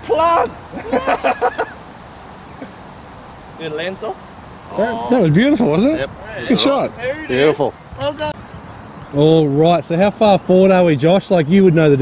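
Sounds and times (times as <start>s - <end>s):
quiet outdoor background: 0.0s - 12.0s
man laughing excitedly: 0.2s - 1.8s.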